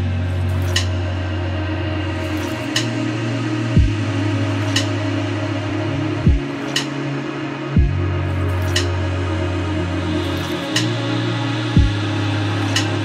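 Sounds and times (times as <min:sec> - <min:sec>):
synth music with slow beat: 0:00.0 - 0:13.0.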